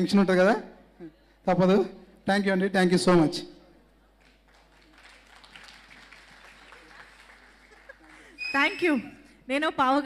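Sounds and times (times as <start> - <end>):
audience applause: 4.2 - 8.4.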